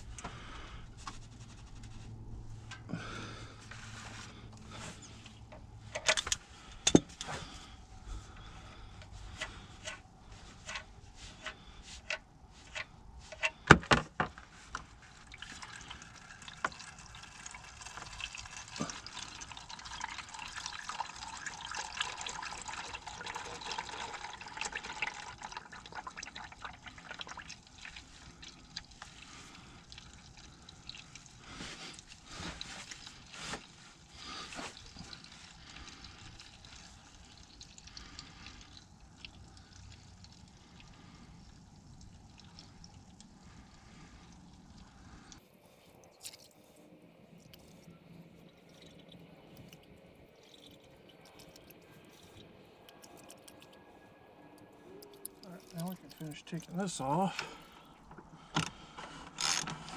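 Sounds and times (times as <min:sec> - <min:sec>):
oil pouring and splashing: 0:00.0 - 0:59.9.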